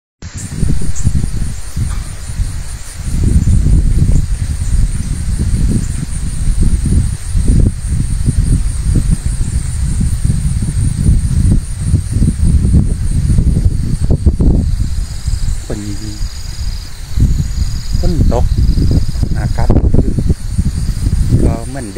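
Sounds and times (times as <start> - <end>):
wind buffeting microphone: 0.2 - 21.9
insect chirring: 0.3 - 21.9.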